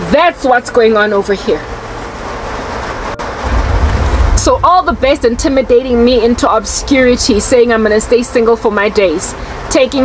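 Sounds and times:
steady rushing noise: 0:00.1 - 0:09.7
low rumble: 0:02.4 - 0:08.0.

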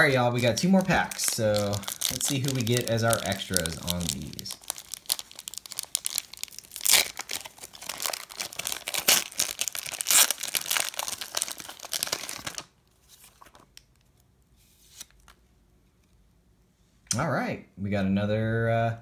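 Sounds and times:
foil wrapper tearing and crinkling: 0:00.0 - 0:13.8.

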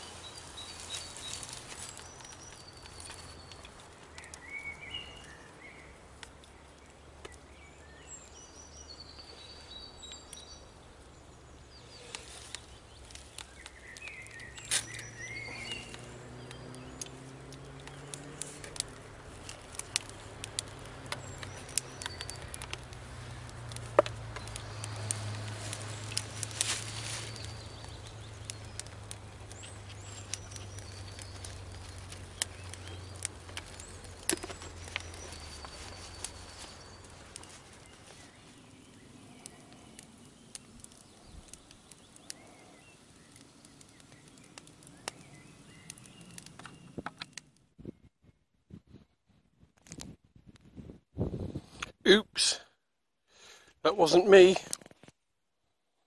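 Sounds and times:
kindling crackling and popping: 0:00.0 - 0:49.0, 0:49.6 - 0:52.6, 0:53.3 - 0:55.2.

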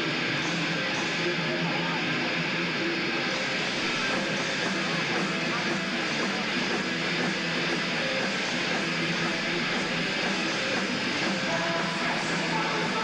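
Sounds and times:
thrash metal band playing live: 0:00.0 - 0:13.0.

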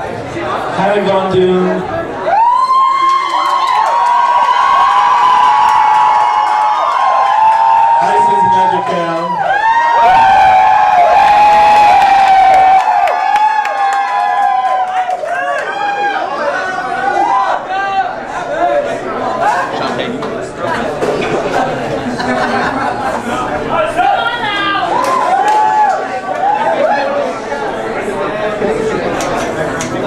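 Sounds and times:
high-pitched whoops and shrieks: 0:02.2 - 0:15.0
crowd cheering and screaming: 0:02.2 - 0:18.2, 0:24.0 - 0:27.4.

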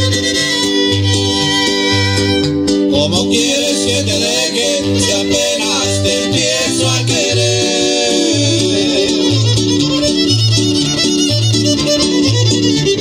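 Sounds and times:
violin melody: 0:00.0 - 0:02.7, 0:04.8 - 0:13.0
plucked bass line: 0:00.0 - 0:13.0
strummed guitars: 0:00.0 - 0:13.0.

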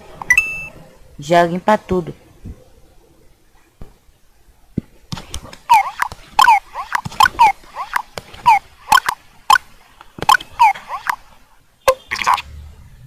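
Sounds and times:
sharp clicks: 0:05.1 - 0:11.2
small animal squeaky chirps: 0:05.7 - 0:09.6, 0:10.3 - 0:11.2, 0:11.9 - 0:12.4.

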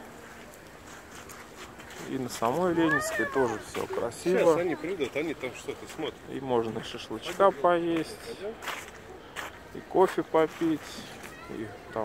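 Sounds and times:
city square background noise: 0:00.0 - 0:12.0.

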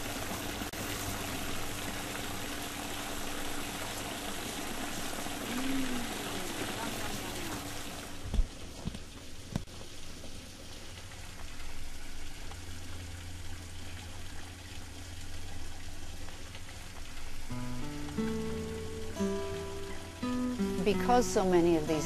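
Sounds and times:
outdoor background hiss: 0:00.0 - 0:22.0
plucked-string music: 0:17.5 - 0:22.0.

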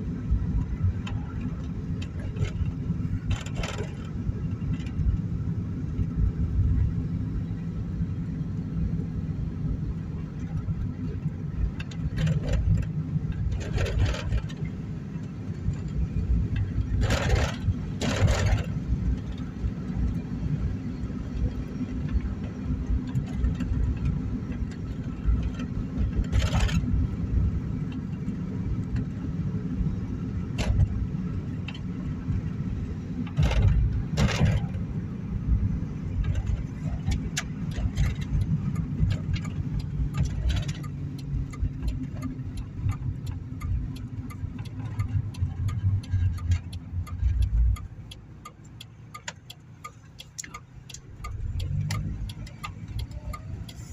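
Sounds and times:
engine and tyre rumble: 0:00.0 - 0:53.9
quick regular ticks: 0:36.2 - 0:53.9.

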